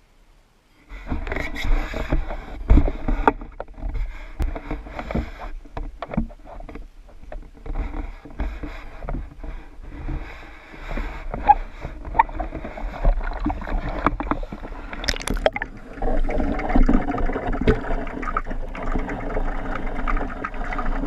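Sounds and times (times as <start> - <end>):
pool water sloshing and splashing: 12.1 - 21.0.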